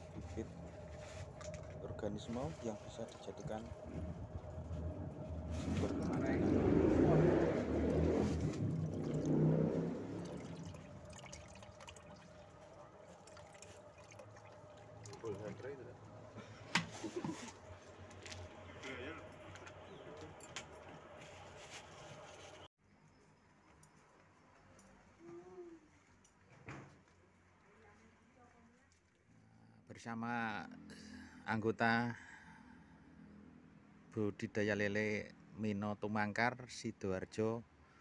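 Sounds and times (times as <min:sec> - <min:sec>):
water pouring into plastic bucket: 0:07.8 - 0:15.7.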